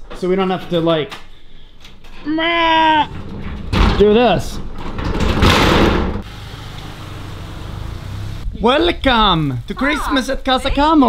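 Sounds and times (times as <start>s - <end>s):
small car engine idling: 6.2s - 8.4s.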